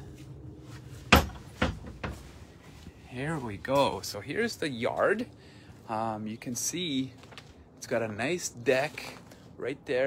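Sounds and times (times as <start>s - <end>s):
gate knocking: 1.1s - 2.2s.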